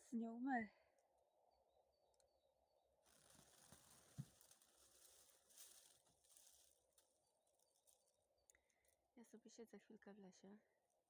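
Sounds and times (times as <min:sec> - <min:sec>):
faint rustling: 0:03.1 - 0:08.4.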